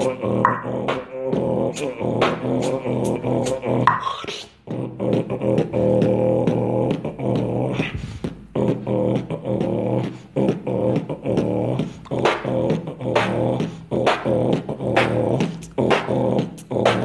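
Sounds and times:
beatboxing with vocal bass: 0.0s - 17.0s.

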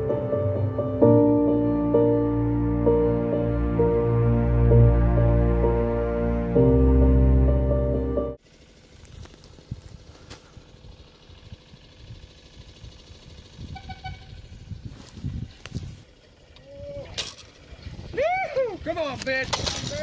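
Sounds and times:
music: 0.0s - 8.4s
wind rumble on microphone: 9.5s - 18.4s
light cracks and knocks: 19.2s - 20.0s.

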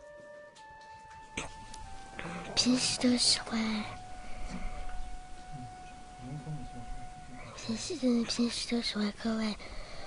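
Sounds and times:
child speaking: 2.4s - 4.0s, 7.6s - 9.8s.

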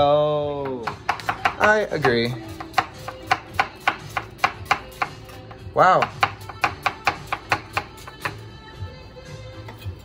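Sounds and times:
knife slicing onion on board: 0.6s - 8.4s.

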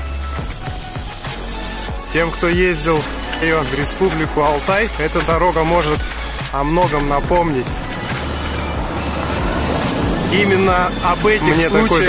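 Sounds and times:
truck engine rumble: 0.0s - 12.0s
tyres crunching on gravel: 0.0s - 12.0s.

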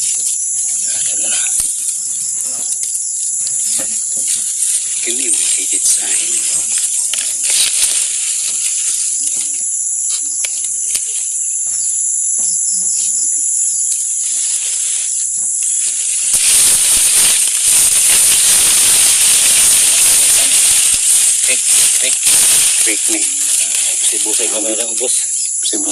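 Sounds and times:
high-pitched insect chorus: 0.0s - 25.9s
loud rushing hiss: 3.5s - 10.1s, 14.0s - 25.9s.

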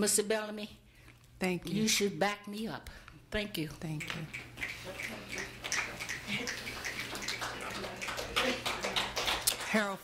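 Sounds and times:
audience applauding: 4.5s - 9.9s.

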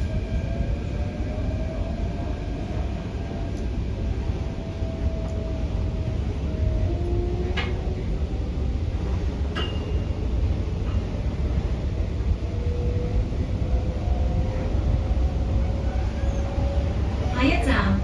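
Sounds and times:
faint train whine: 0.0s - 18.0s
wheels rumbling on rail: 0.0s - 18.0s.

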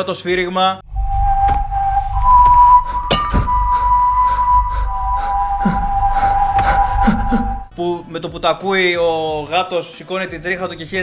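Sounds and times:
menacing whistled tune: 0.8s - 7.8s
low dark orchestral rumble: 2.2s - 7.7s.

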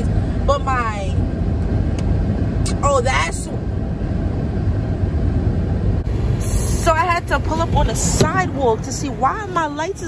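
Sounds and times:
car cabin low rumble: 0.0s - 10.0s.

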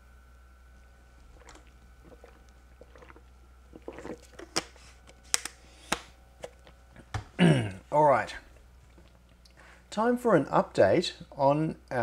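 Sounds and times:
steady background hum: 0.0s - 12.0s
person gulping a drink: 1.1s - 5.1s, 6.6s - 9.6s.

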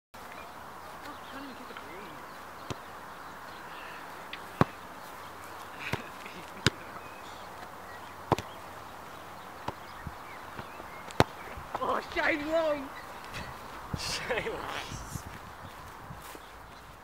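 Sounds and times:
outdoor hiss: 0.2s - 16.0s
football knocks: 4.6s - 4.8s, 8.3s - 8.5s.

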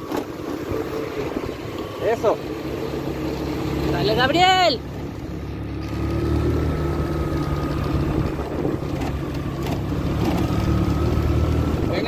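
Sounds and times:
engine running low hum: 0.0s - 12.0s.

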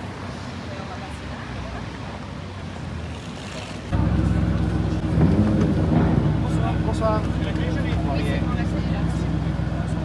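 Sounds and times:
street traffic noise: 0.0s - 10.0s
car engine idling: 3.9s - 10.0s.

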